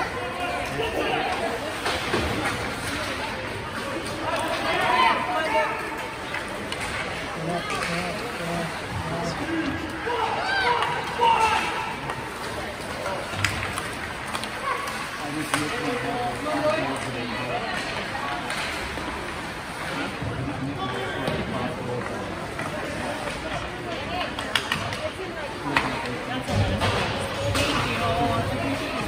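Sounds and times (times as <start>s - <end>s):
spectators talking: 0.0s - 29.0s
hockey sticks and puck clacking: 0.8s - 8.4s, 9.5s - 20.2s, 21.2s - 29.0s.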